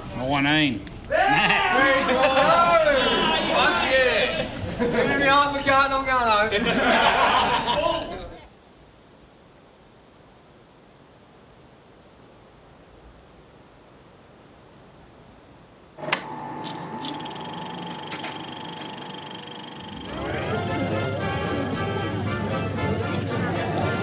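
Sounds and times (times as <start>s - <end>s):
faint steady hiss: 0.0s - 17.0s
steady hum with held tones: 0.0s - 24.0s
music: 20.0s - 24.0s.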